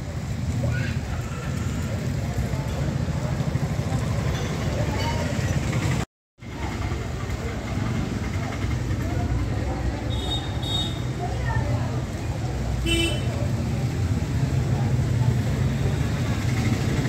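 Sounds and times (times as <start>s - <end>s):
passing traffic: 0.0s - 17.0s.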